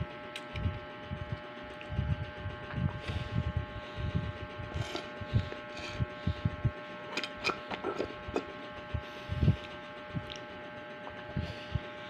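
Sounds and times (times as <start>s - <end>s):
faint steady hum: 0.0s - 12.0s
chewing mouth sounds: 9.6s - 10.5s.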